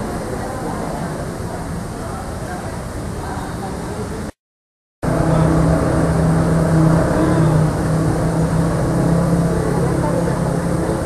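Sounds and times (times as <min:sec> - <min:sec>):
mechanical hum: 0:05.0 - 0:11.0.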